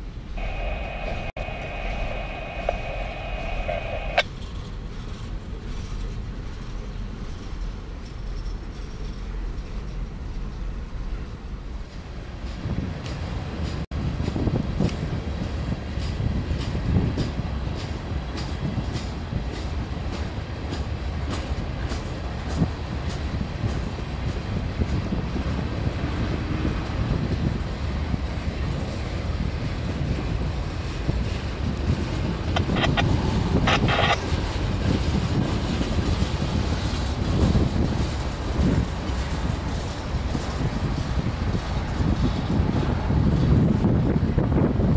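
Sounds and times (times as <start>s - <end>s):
freight train rumbling past: 0.0s - 44.9s
wheels clacking over rail joints: 12.4s - 26.0s.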